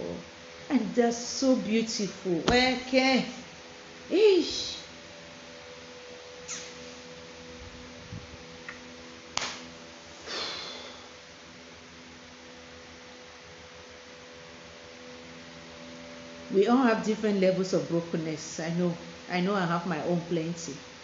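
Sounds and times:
low electrical hum: 0:00.0 - 0:21.0
sharp click: 0:09.4 - 0:09.6.

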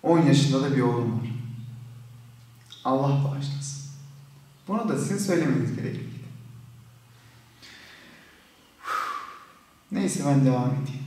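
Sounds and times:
person breathing: 0:07.1 - 0:09.7
sharp breath: 0:07.2 - 0:09.7.

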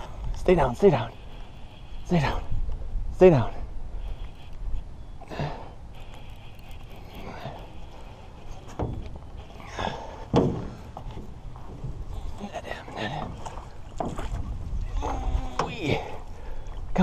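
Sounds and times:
wind rumble on microphone: 0:00.0 - 0:17.0
hollow knocks in metal boat: 0:10.3 - 0:12.0.

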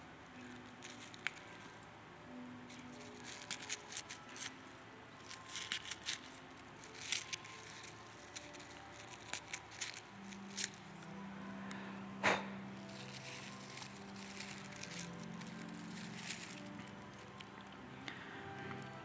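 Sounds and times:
faint held music notes: 0:00.0 - 0:19.0
paper napkin tearing: 0:02.7 - 0:04.6, 0:05.2 - 0:10.8, 0:12.8 - 0:17.1.

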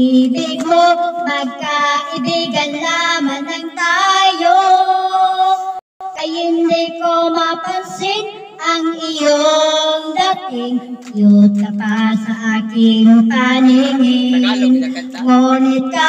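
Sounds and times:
woman singing into microphone: 0:00.0 - 0:16.0.

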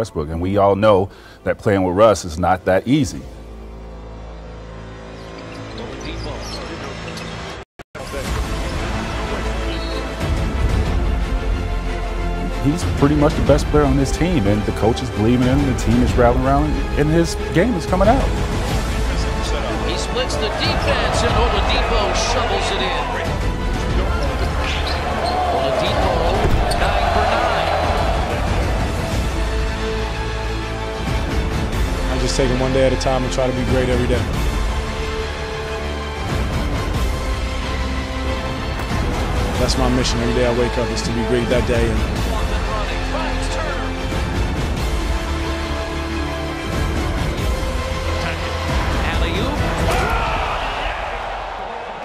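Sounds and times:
arena crowd noise: 0:20.0 - 0:28.9, 0:48.2 - 0:52.0.

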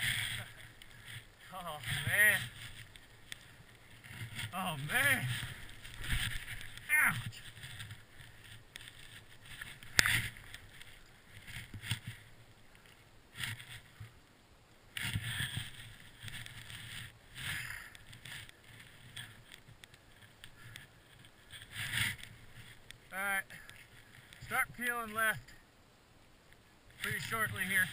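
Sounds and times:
skis swishing through snow: 0:00.0 - 0:12.3.

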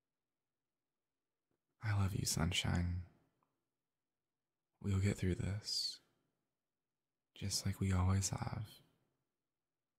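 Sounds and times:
man speaking softly: 0:01.8 - 0:03.1, 0:04.8 - 0:06.1, 0:07.4 - 0:08.8.

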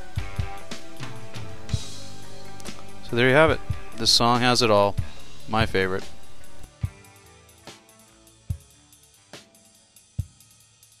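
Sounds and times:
faint sustained guitar: 0:00.0 - 0:06.7
drum kit strokes: 0:00.0 - 0:11.0
bass drum thumps: 0:00.2 - 0:04.2.

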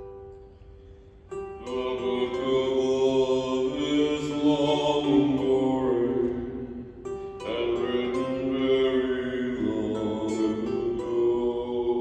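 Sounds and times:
acoustic band playing slow song: 0:00.0 - 0:12.0.

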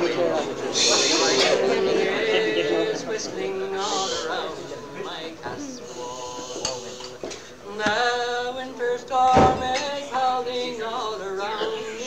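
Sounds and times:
man singing slow lament: 0:02.0 - 0:07.0, 0:07.6 - 0:12.0.

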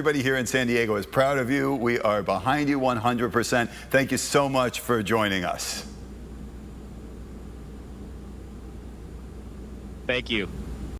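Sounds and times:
ventilation fans humming: 0:00.0 - 0:10.9.

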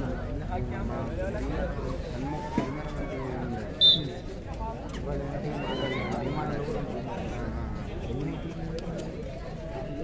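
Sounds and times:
chatter of players and spectators: 0:00.0 - 0:10.0
referee's whistle blast: 0:03.8 - 0:04.1.

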